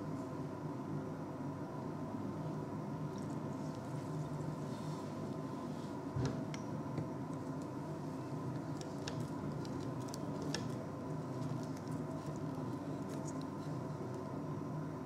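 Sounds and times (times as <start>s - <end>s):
electrical room hum: 0.0s - 15.0s.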